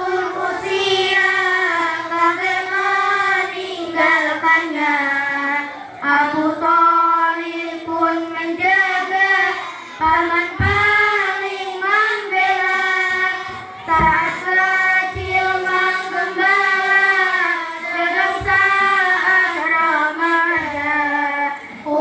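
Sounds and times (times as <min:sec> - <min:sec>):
girl singing into a microphone: 0:00.0 - 0:22.0.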